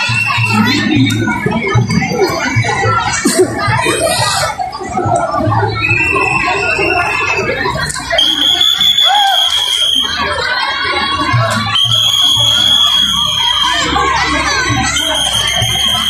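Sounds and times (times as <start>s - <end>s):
low drum beats: 0.0s - 8.1s
crowd chatter and shouting: 0.0s - 16.0s
music: 0.0s - 16.0s.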